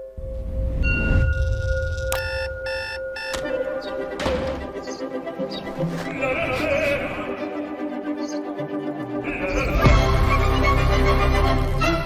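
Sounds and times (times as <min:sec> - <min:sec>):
held tone: 0:00.0 - 0:03.9
alarm clock beeping: 0:01.0 - 0:04.1.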